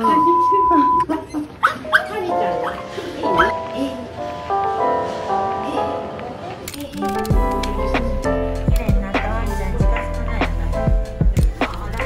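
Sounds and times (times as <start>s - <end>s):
background music: 0.0s - 12.0s
small dog barking: 1.6s - 2.8s.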